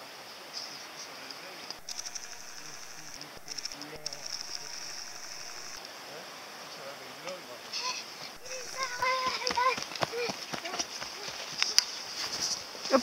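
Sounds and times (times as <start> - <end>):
faint voices: 1.4 - 13.0
high rapidly pulsing trill: 1.8 - 5.8, 8.4 - 9.3
footsteps on earth track: 8.3 - 13.0.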